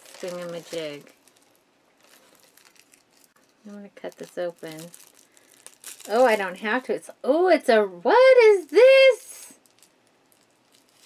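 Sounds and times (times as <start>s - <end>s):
plastic packaging crinkling: 0.0s - 6.7s, 9.6s - 11.0s.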